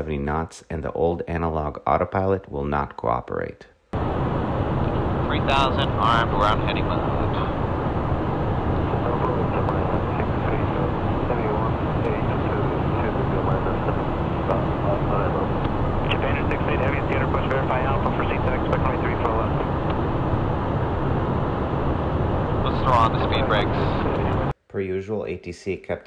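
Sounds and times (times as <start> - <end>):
jet engines humming: 4.0 - 24.5
airflow around cabin: 4.0 - 24.6
faint voice: 5.3 - 7.6, 8.9 - 19.7, 22.6 - 24.5.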